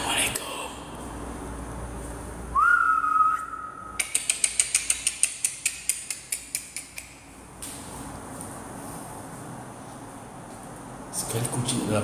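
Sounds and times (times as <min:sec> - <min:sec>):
rising whistled note: 0:02.5 - 0:04.0.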